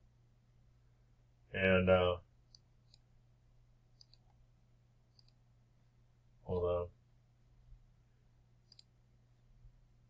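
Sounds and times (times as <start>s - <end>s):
computer mouse clicks: 2.5s - 3.1s, 4.0s - 4.4s, 5.1s - 5.4s, 8.6s - 8.9s.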